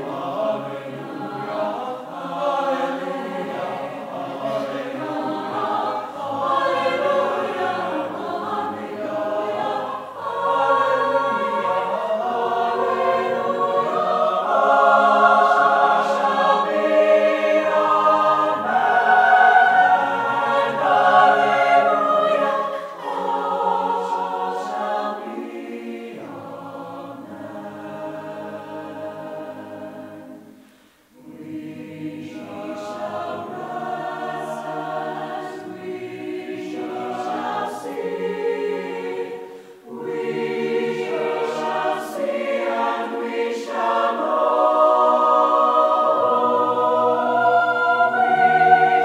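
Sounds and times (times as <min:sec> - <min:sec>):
mixed choir singing chords: 0:00.0 - 0:49.0.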